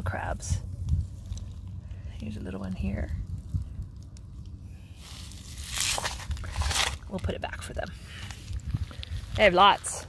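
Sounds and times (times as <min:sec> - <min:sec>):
low rumble: 0:00.0 - 0:10.0
rock scraping on gravel: 0:05.0 - 0:10.0.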